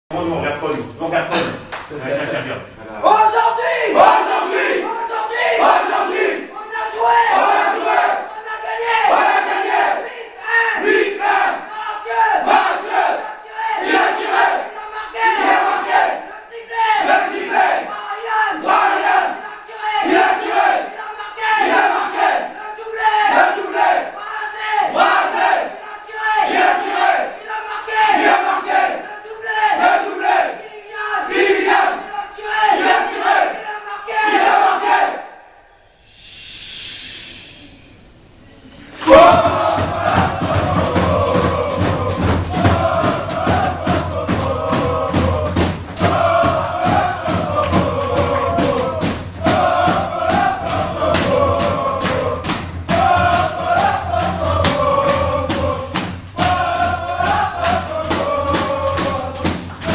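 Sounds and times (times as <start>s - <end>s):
team chanting and shouting: 3.0s - 35.8s, 39.0s - 59.9s.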